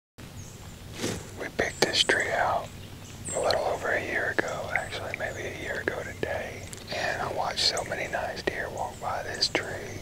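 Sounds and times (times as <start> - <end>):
man whispering: 1.4 - 10.0.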